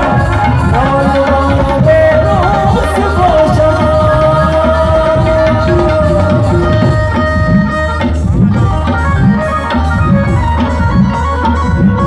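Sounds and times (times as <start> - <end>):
plucked electric string instrument: 0.0 - 12.0.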